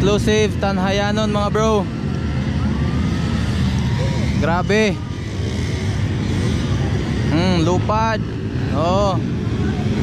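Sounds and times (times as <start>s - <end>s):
distant engines revving: 0.0s - 10.0s
loud low outdoor rumble: 0.0s - 10.0s.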